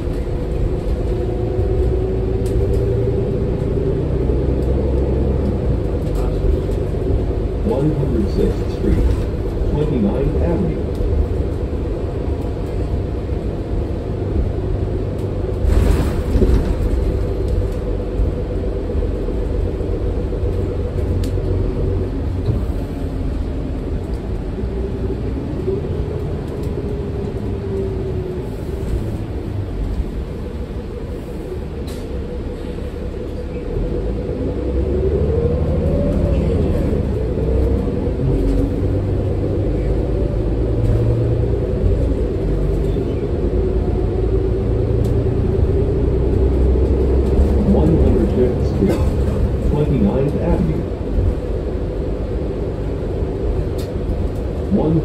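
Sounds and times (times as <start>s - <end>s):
bus diesel engine rumbling: 0.0s - 55.0s
drivetrain whine: 0.0s - 55.0s.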